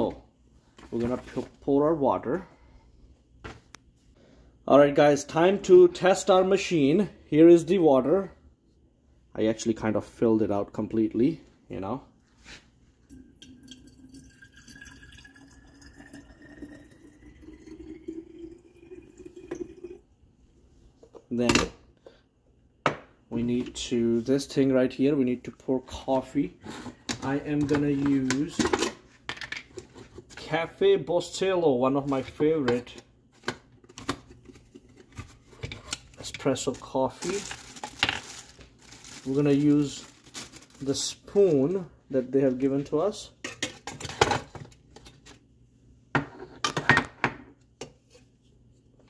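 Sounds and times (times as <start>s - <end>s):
water trickling into tank: 13.0s - 20.1s.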